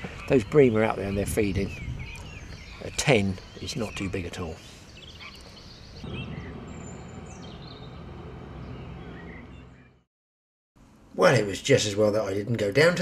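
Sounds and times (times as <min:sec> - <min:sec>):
birds chirping: 0:00.0 - 0:10.1
low background rumble: 0:06.0 - 0:10.0.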